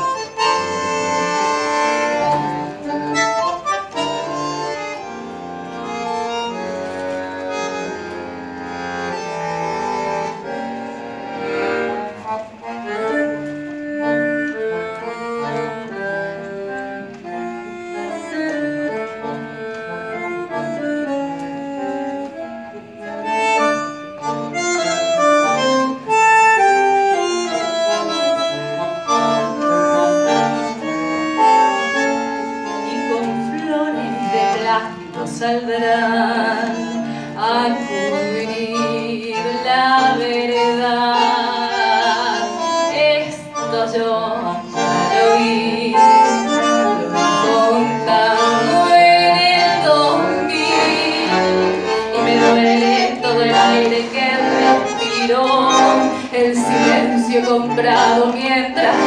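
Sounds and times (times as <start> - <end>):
bandoneon melody: 0.0 - 59.0
tango ensemble playing: 0.0 - 59.0.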